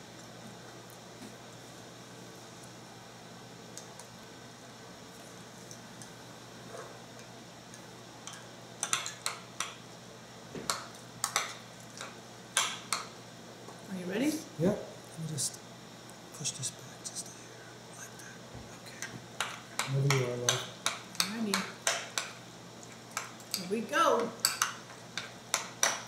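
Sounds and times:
metal spoons clinking on ceramic: 24.4 - 26.0.

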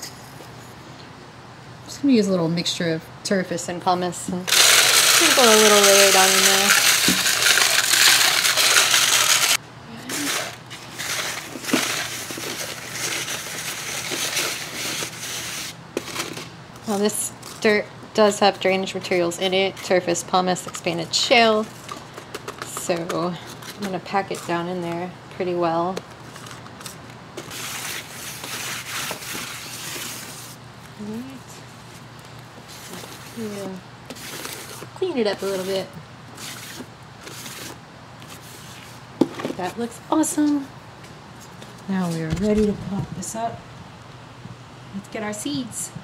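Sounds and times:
gritty potting mix rustle: 4.0 - 43.6
granules pouring into plastic tray: 4.5 - 15.7.

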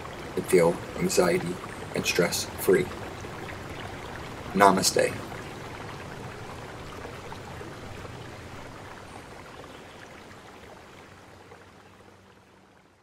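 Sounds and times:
running water: 0.0 - 13.0.

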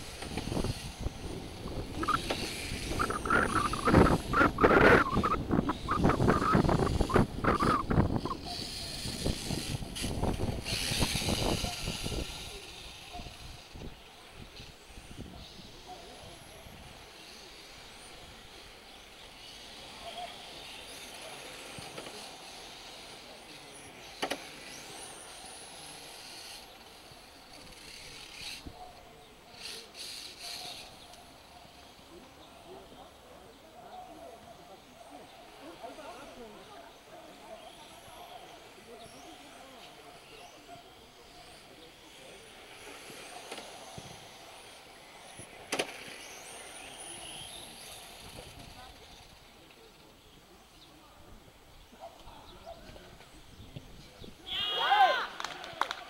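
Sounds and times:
rc car motors whining: 0.0 - 51.0.

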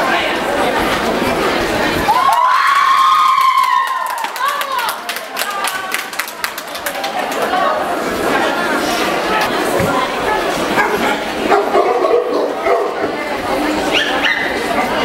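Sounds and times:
crowd chatter: 0.0 - 15.0
dogs barking: 10.8 - 13.2, 13.9 - 14.7.

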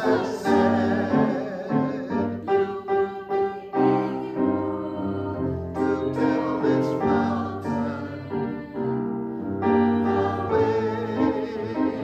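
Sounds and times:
cantor singing: 0.0 - 9.0, 9.6 - 12.0
piano accompaniment: 0.0 - 12.0
voices singing in response: 0.0 - 12.0.

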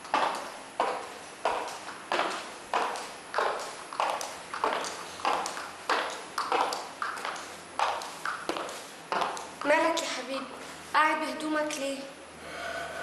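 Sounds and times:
high heels clicking on tiled floor: 0.0 - 10.7.

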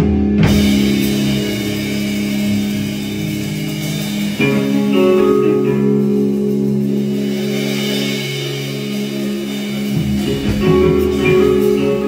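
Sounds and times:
live band led by guitar: 0.0 - 12.0.

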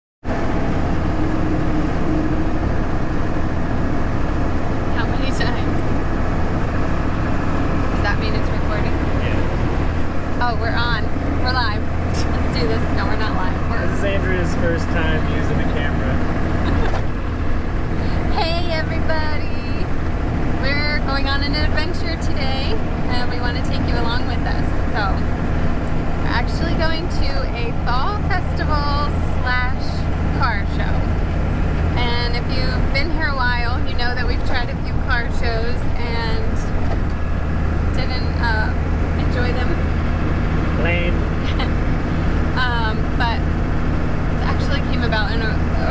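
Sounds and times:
diesel engine drone: 0.2 - 45.9
road noise: 0.2 - 45.9
voices: 0.4 - 45.9.

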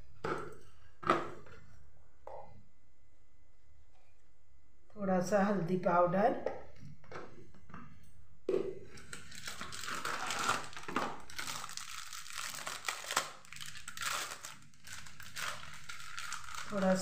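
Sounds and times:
spice packet crinkling: 9.0 - 17.0.

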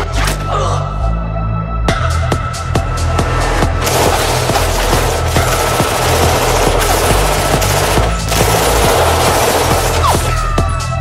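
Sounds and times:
sampled machine-gun fire: 3.8 - 10.5
hard techno bass line: 3.8 - 10.6.

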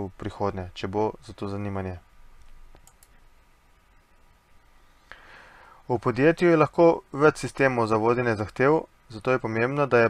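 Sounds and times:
background hiss: 0.0 - 10.0
thin steady whine: 0.0 - 10.0
faint short clicks: 2.4 - 3.2.

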